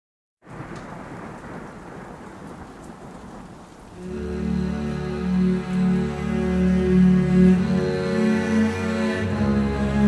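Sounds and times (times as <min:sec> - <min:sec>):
low thunder-like rumble: 0:00.4 - 0:06.3
steady rain: 0:00.4 - 0:10.0.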